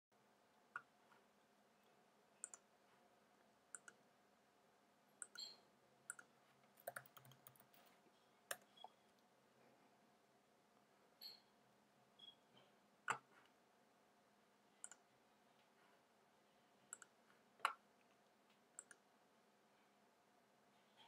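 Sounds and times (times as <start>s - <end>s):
computer mouse clicks: 2.4s - 2.7s, 3.7s - 4.0s, 5.2s - 7.9s, 8.5s - 9.0s, 13.1s - 13.3s, 14.8s - 15.0s, 16.9s - 17.8s, 18.8s - 19.0s.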